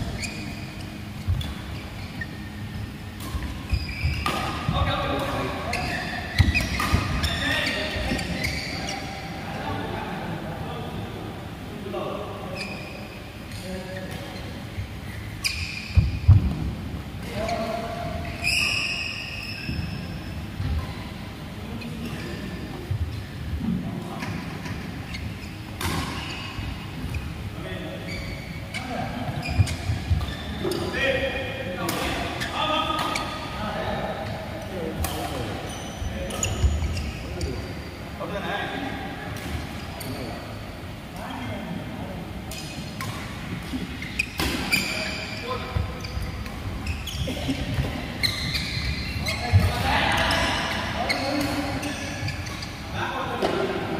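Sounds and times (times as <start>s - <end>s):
sneaker squeaks: 0.0s - 9.9s, 12.4s - 41.7s, 42.4s - 53.9s.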